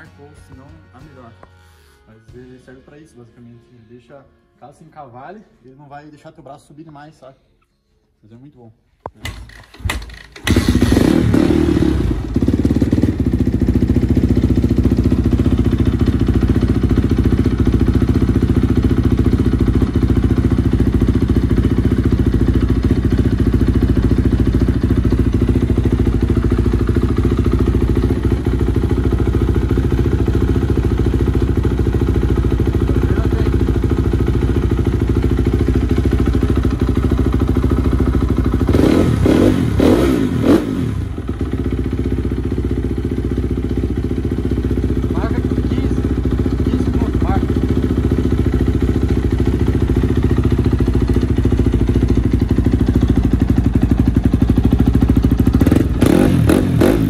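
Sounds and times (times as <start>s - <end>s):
motocross engine running and revving: 10.5s - 31.0s, 38.2s - 41.6s, 49.6s - 57.0s.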